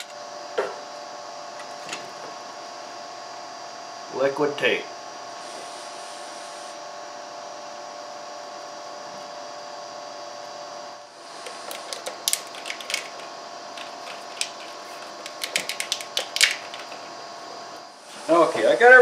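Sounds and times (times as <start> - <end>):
steady hum with held tones: 0.0 - 19.0
wire handling clicks and rustles: 11.4 - 17.1.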